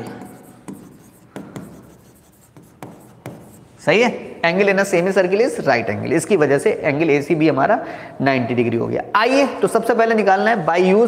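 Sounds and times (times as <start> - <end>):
pen tapping and scraping on board: 0.0 - 3.6.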